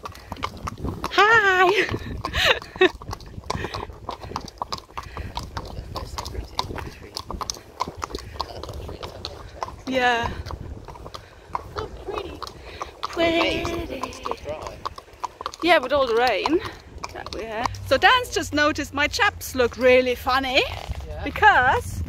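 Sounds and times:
horse hooves on tarmac: 0:00.0 - 0:22.0.

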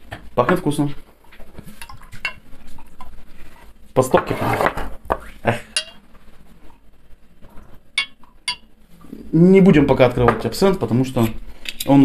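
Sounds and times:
glass clinking on glass: 0:05.8 - 0:06.0, 0:08.0 - 0:08.7.

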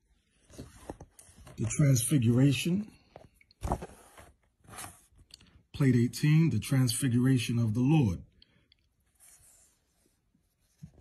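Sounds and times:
hand rustling book page: 0:00.0 - 0:05.3, 0:09.0 - 0:11.0.

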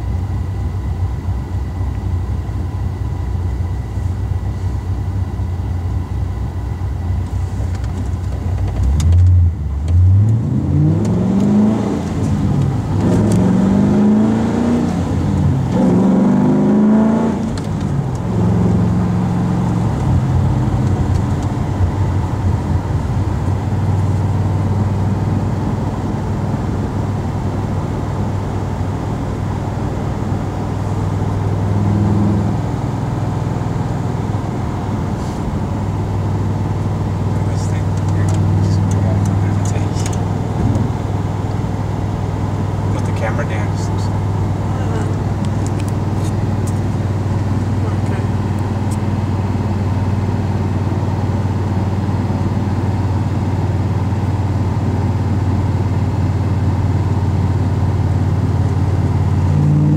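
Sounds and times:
car engine accelerating: 0:07.1 - 0:59.9.

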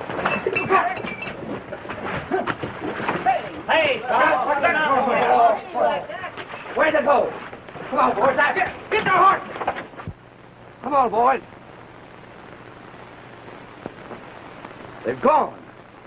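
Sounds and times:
knocks and bumps from scuffle: 0:00.1 - 0:03.5
men shouting and yelling: 0:02.3 - 0:09.8.

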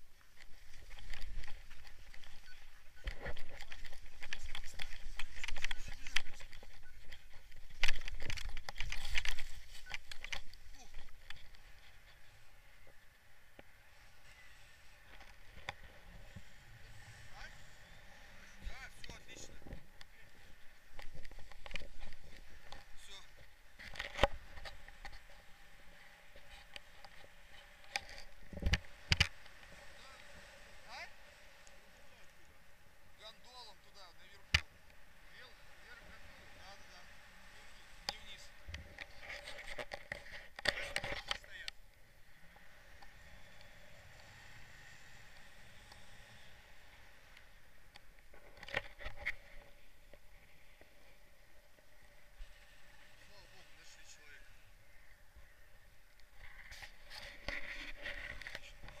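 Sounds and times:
wind and airflow noise: 0:00.0 - 0:59.0.

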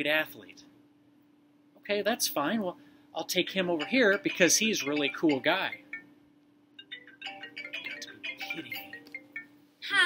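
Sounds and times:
chime-like melody: 0:03.8 - 0:06.1, 0:06.8 - 0:09.6.

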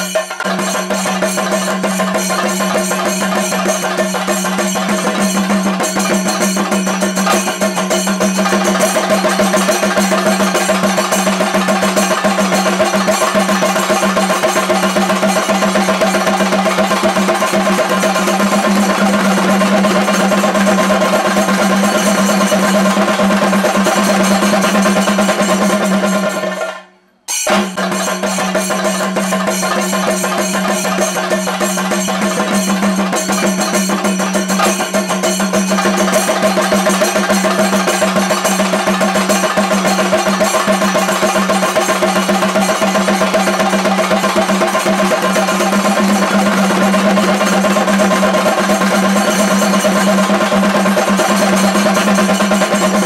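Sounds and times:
fast dense drumming: 0:00.0 - 0:26.6, 0:27.5 - 0:53.0.

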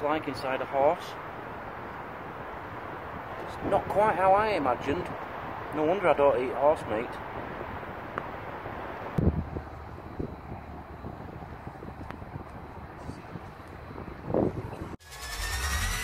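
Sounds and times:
electronic music: 0:15.0 - 0:16.0.

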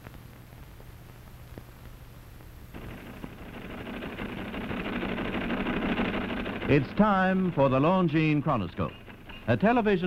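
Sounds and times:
film soundtrack hiss and hum: 0:00.0 - 0:10.0
typewriter typing: 0:02.8 - 0:10.0.

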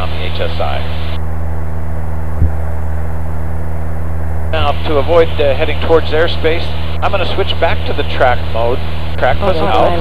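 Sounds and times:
light aircraft engine drone: 0:00.0 - 0:10.0.

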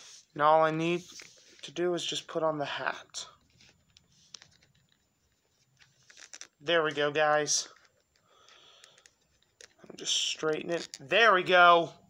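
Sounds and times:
small plastic clicks: 0:07.7 - 0:09.8.

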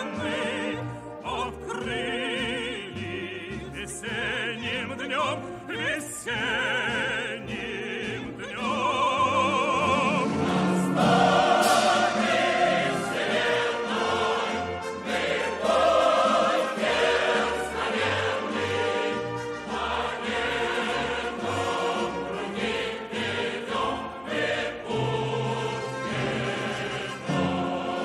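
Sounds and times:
choir-like voices: 0:00.0 - 0:28.0
orchestra playing: 0:00.0 - 0:28.0.

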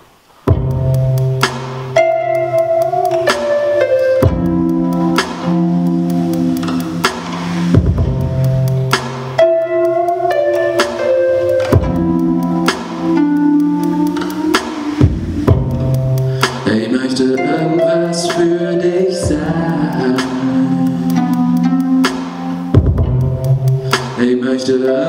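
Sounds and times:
instrumental music with steady beat: 0:00.4 - 0:25.0.

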